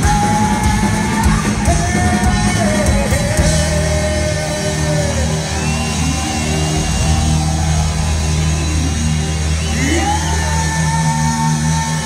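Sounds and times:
heavy metal band playing: 0:00.0 - 0:12.0.

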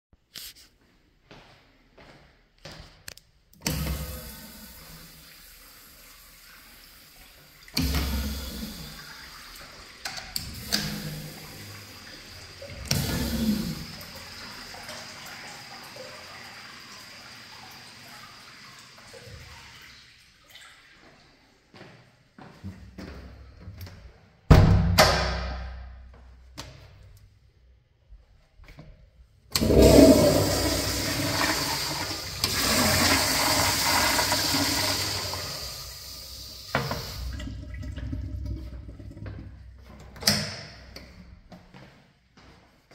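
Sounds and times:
toilet flushing: 0:03.6 - 0:21.2, 0:29.5 - 0:41.2
urinal flushing: 0:03.6 - 0:21.6, 0:29.5 - 0:41.4.

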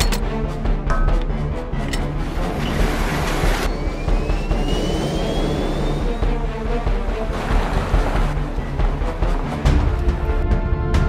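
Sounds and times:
jet engine whine: 0:03.7 - 0:06.2.

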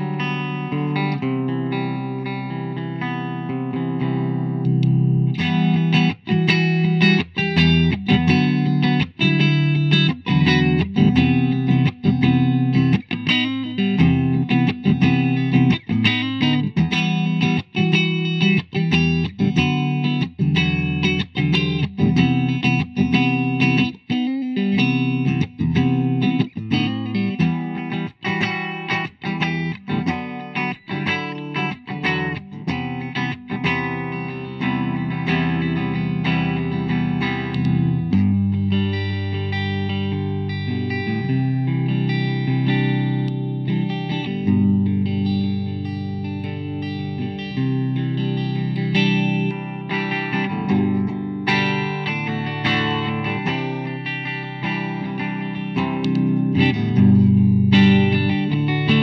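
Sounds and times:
clean electric guitar playing: 0:00.0 - 0:59.0.

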